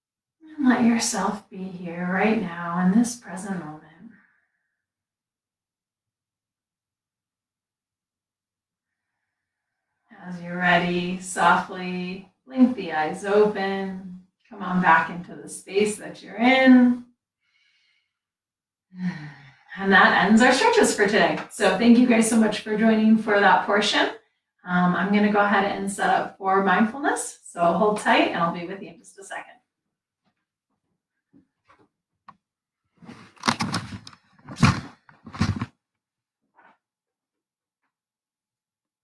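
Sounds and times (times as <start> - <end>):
faint breath: 17.4 - 18.2, 19.0 - 19.8
microphone handling thumps: 33.0 - 35.8.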